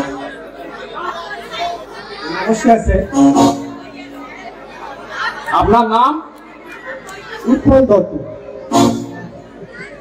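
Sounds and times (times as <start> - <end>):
person speaking over public address: 2.2 - 4.2, 5.5 - 6.4, 7.4 - 8.6.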